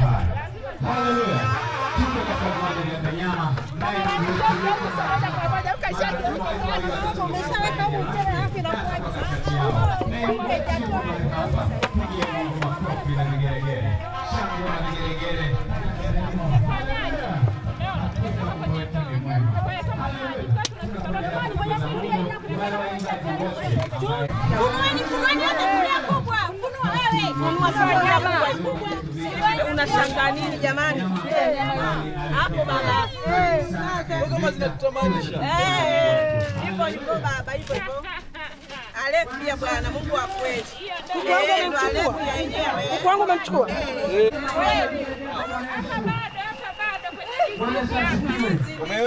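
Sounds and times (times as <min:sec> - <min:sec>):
voices chattering: 0:00.0 - 0:49.0.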